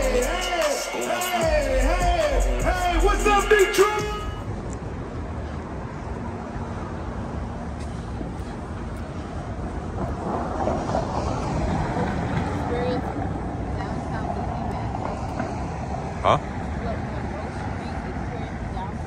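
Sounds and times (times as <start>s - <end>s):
indistinct talking: 0.0s - 4.5s, 11.7s - 19.0s
passing traffic rumble: 0.0s - 19.0s.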